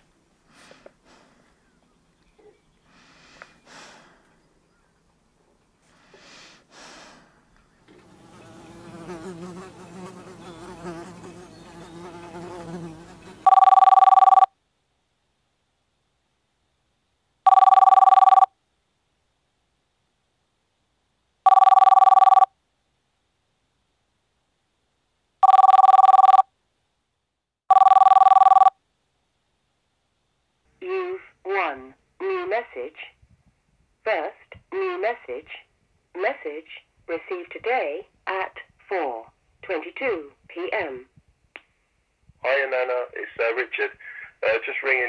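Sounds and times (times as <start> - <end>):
telephone ringing electronic trill: 13.5 - 14.5, 17.5 - 18.5, 21.5 - 22.5, 25.4 - 26.5, 27.7 - 28.8.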